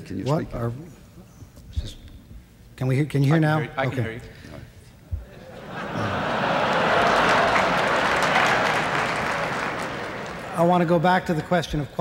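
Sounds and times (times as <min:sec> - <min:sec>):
audience applauding: 0:05.6 - 0:11.3.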